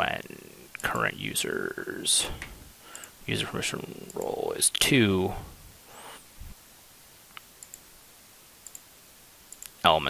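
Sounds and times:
faint computer mouse clicks: 7.3s - 7.8s, 8.6s - 8.9s, 9.5s - 9.8s.

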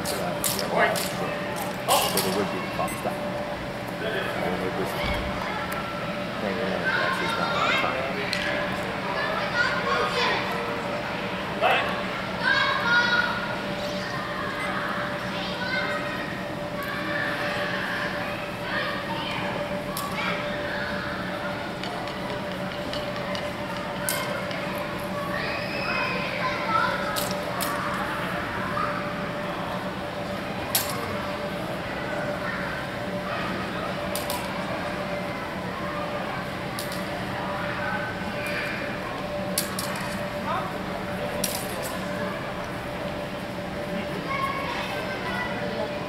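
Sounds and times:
onlookers chattering: 0.0s - 46.0s.

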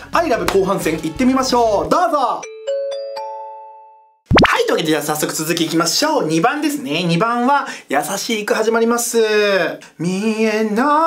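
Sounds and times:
rising swoosh: 4.3s - 4.6s
man talking: 4.5s - 11.0s.

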